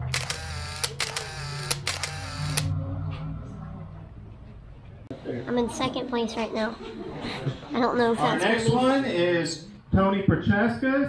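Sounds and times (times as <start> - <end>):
camera shutter clicking: 0.0 - 2.7.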